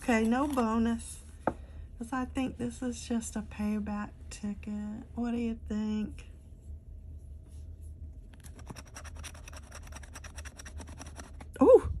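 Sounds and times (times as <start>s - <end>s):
metal tool scraping ticket: 8.4s - 11.5s.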